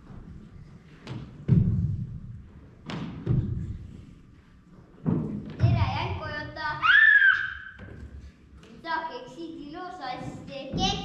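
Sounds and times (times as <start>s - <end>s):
thuds on wooden stage floor: 1.0s - 3.8s
child calling out: 6.6s - 7.8s.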